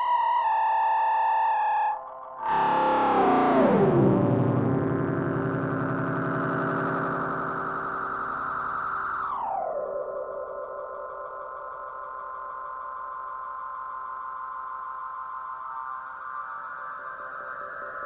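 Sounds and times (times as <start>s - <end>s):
electronic soundscape music: 0.0s - 13.5s.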